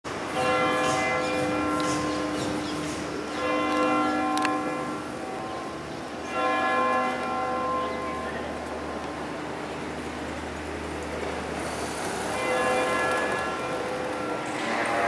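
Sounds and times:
city traffic noise: 0.0s - 15.0s
church bell tolling: 0.1s - 9.4s, 12.2s - 15.0s.

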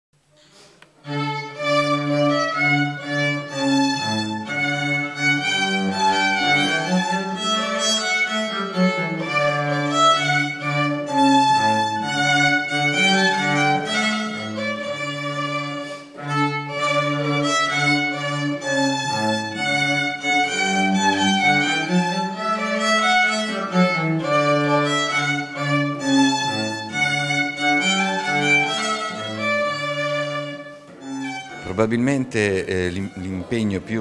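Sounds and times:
violin melody: 0.9s - 34.0s
cello low sustained notes: 1.0s - 34.0s.

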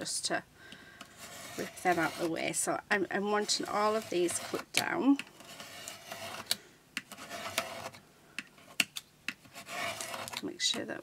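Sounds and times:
knife scraping through paper: 1.2s - 2.4s, 3.3s - 4.7s, 5.4s - 6.5s, 7.2s - 8.0s, 9.5s - 10.4s.

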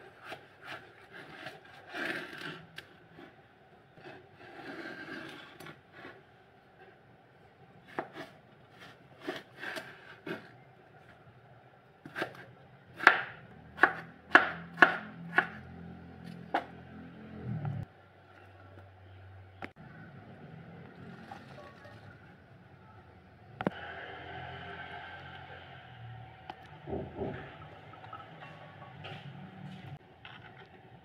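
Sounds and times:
knife chopping on wooden board: 13.0s - 15.6s.

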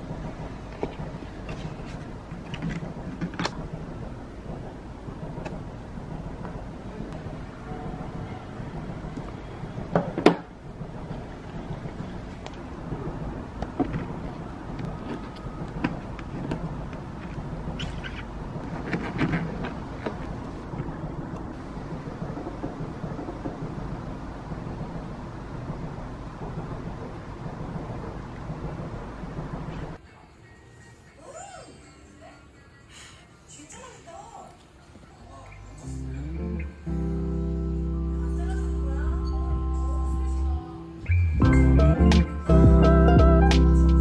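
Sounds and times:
low rumbling background noise: 0.0s - 44.0s.

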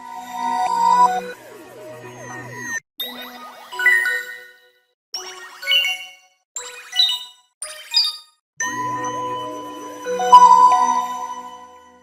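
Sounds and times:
phone startup chime: 10.2s - 11.6s.

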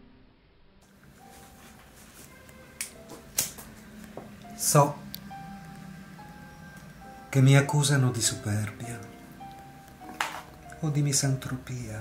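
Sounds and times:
faint piano notes: 0.8s - 12.0s.

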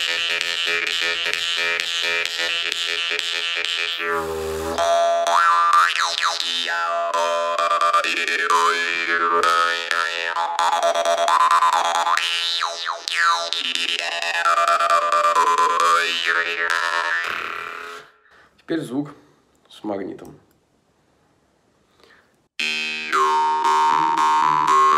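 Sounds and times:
jaw harp drone: 0.0s - 18.2s, 22.6s - 24.9s.

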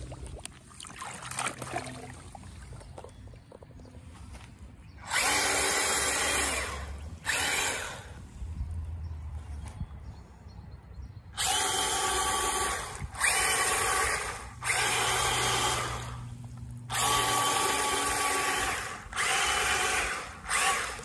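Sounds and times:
tyres churning through water: 0.0s - 3.8s, 5.0s - 8.2s, 11.4s - 21.0s
electric toy motors whining: 5.0s - 8.2s, 11.4s - 21.0s.

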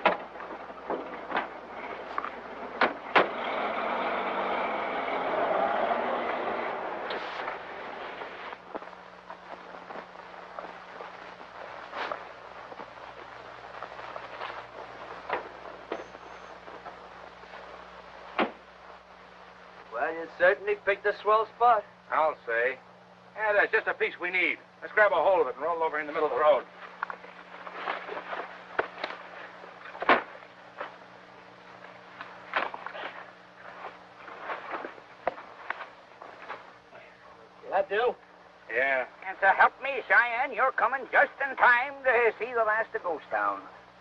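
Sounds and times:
film soundtrack hum and hiss: 0.0s - 44.0s
car engine driving off: 1.1s - 8.3s
car door shutting: 2.8s - 3.4s.

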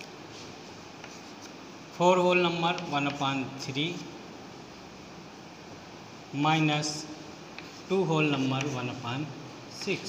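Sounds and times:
chalk scratching on blackboard: 0.3s - 1.6s, 7.6s - 8.9s.

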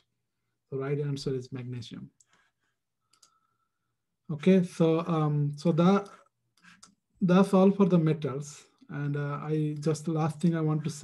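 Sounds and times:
faint clicks: 2.2s - 3.4s.

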